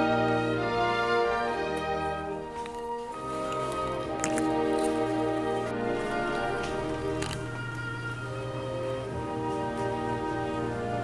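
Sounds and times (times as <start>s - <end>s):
slow instrumental music: 0.0s - 11.0s.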